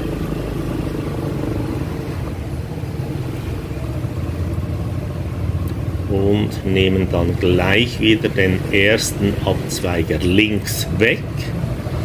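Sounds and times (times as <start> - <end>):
motor scooter engine droning: 0.0 - 12.0.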